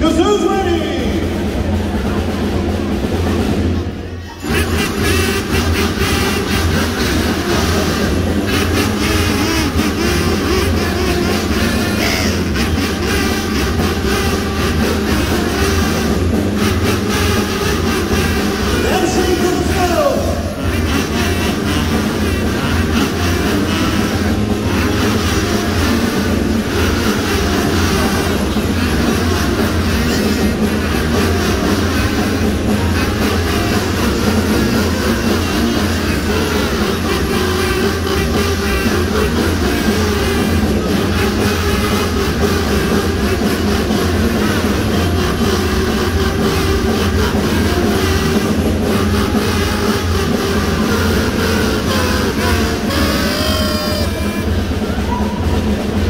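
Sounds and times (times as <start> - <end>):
concert band playing: 0.0 - 56.0.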